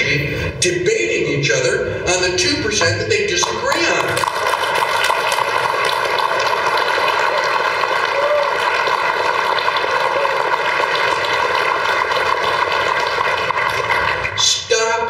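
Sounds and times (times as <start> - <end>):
audience applauding: 3.7 - 14.5.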